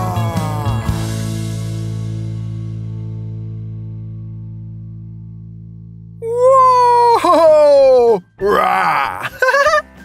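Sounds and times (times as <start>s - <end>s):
man holding a high ooh: 0.0s - 1.0s, 6.2s - 9.8s
man's raspy roaring shout: 0.0s - 1.0s, 6.2s - 9.4s.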